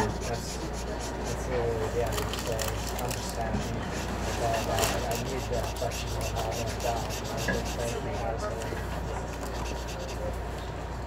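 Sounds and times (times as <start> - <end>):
marker rubbing on paper: 0.0 - 10.4
train car low hum: 7.9 - 11.0.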